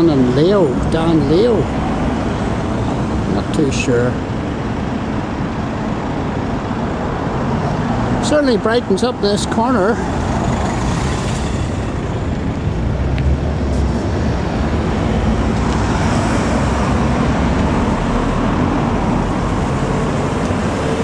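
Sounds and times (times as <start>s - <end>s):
road traffic rushing: 0.0s - 21.0s.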